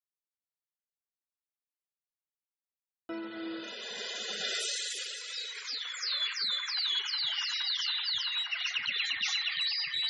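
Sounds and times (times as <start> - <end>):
bird chirping: 4.3 - 10.0.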